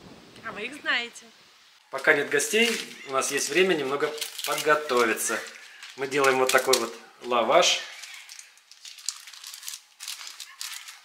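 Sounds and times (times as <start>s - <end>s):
plastic film crinkling: 1.9s - 11.0s.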